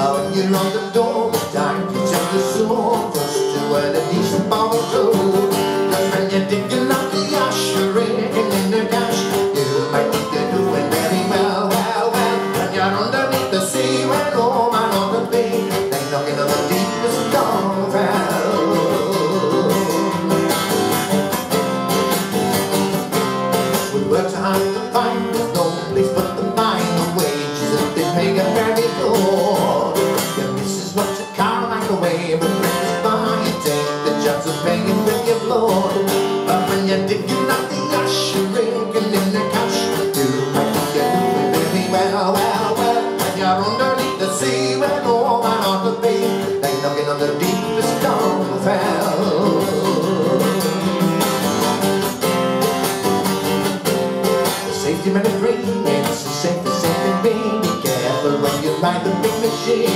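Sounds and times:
acoustic guitar strumming: 0.0s - 59.9s
mandolin playing: 0.0s - 59.9s.

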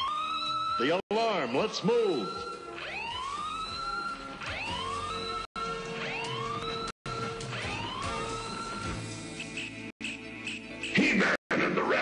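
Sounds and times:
cartoon alarm siren whooping: 0.0s - 9.1s.

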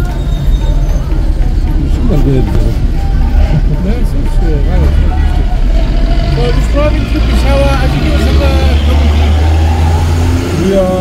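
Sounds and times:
car engine and tyres drone: 0.0s - 11.0s
faint voices: 0.0s - 11.0s.

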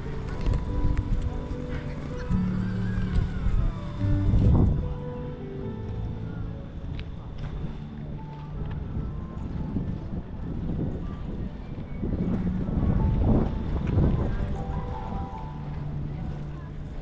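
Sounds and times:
wind rumbling on microphone: 0.0s - 17.0s.

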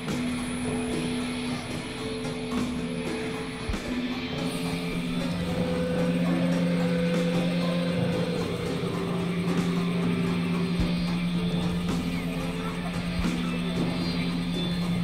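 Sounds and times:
grainy clicking noise texture: 0.0s - 15.0s
high wavering synth tone: 0.0s - 15.0s
low synth drone: 0.0s - 15.0s.

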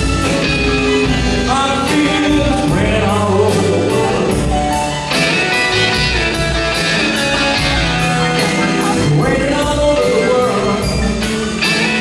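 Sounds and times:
electric guitar: 0.0s - 12.0s
live band playing soul ballad: 0.0s - 12.0s.

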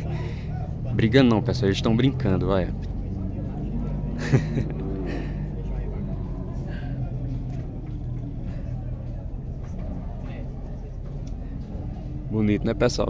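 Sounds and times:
indistinct background voices: 0.0s - 13.0s
steady low rumble: 0.0s - 13.0s.

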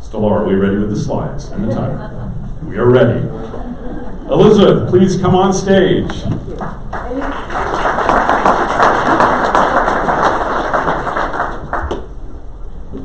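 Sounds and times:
audience applauding: 6.4s - 12.1s.

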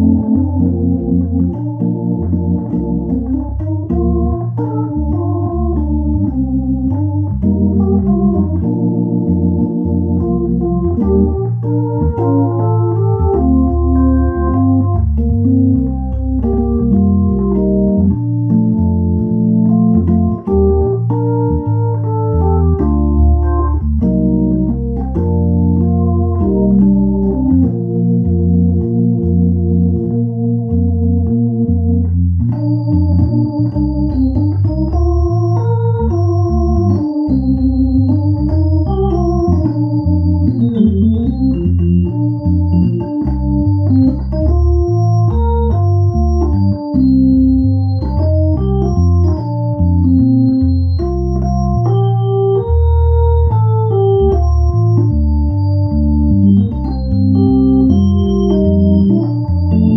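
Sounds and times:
high organ melody line: 0.0s - 59.9s
organ playing a hymn: 0.0s - 59.9s.

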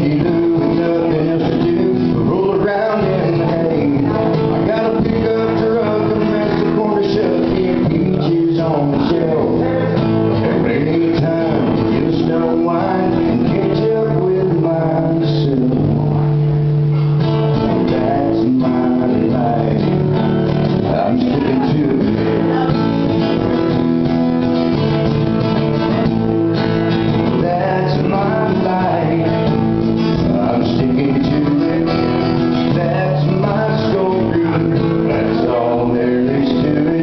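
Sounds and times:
acoustic guitar strumming: 0.0s - 37.0s
man singing: 0.0s - 37.0s.

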